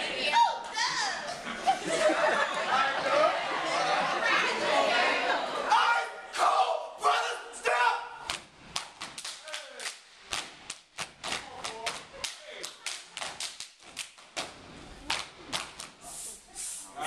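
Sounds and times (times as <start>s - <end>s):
hand claps and slaps: 8.2s - 16.0s.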